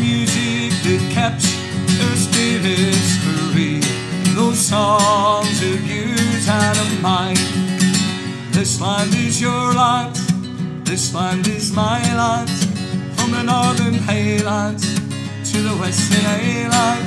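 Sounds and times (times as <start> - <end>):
acoustic guitar strumming: 0.0 - 17.0
man singing: 0.0 - 17.0.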